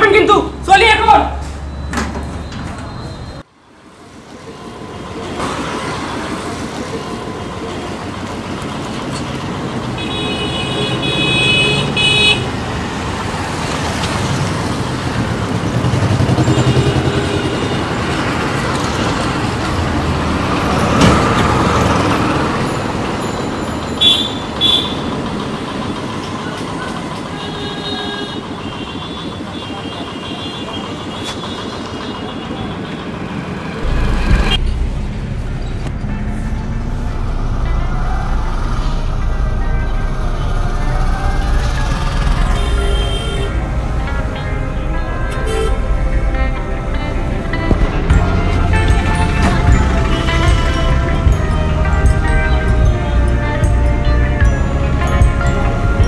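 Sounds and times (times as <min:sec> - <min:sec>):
street traffic rumbling: 0:00.0 - 0:56.0
vehicle horns tooting: 0:09.9 - 0:12.6, 0:16.3 - 0:18.2, 0:23.2 - 0:25.7, 0:26.4 - 0:33.4, 0:42.2 - 0:43.6, 0:45.0 - 0:46.0, 0:48.2 - 0:51.4.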